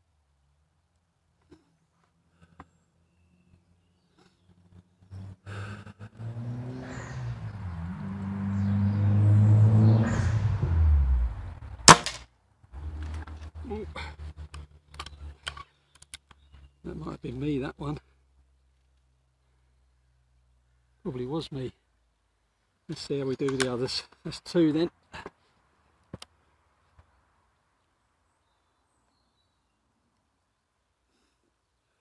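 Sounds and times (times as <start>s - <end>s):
low engine drone: 5.2s - 11.9s
air rifle shot crack: 11.9s - 12.2s.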